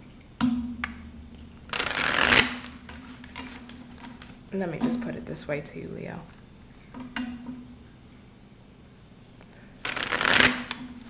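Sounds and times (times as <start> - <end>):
deck of cards shuffling: 1.7 - 4.4, 9.8 - 11.0.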